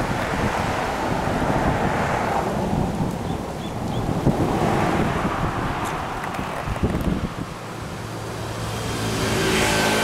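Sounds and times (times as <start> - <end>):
wind buffeting microphone: 0.0 - 8.1.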